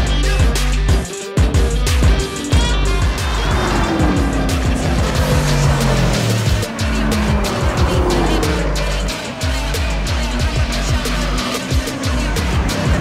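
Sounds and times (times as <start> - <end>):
music with steady beat: 0.0 - 13.0
cars racing past: 2.3 - 13.0.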